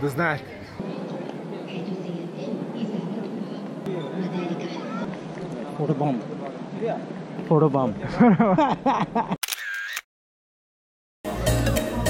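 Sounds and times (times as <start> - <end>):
camera shutter click: 9.4 - 10.1.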